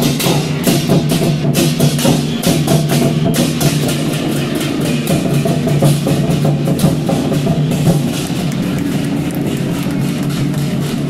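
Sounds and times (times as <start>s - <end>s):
barrel drums in fast rhythm: 0.0s - 11.0s
hand cymbals crashing: 0.0s - 11.0s.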